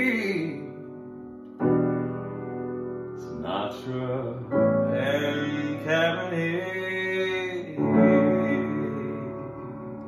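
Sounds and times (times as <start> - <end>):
piano playing jazz chords: 0.0 - 10.0.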